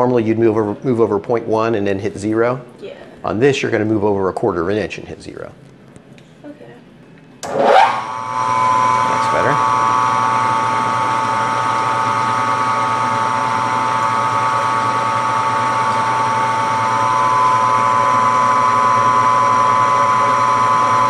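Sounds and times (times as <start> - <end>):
milling machine spindle whining: 7.4 - 21.0.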